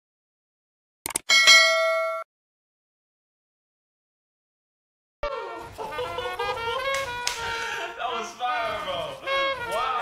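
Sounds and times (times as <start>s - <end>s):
bright bell ding: 1.3s - 2.3s.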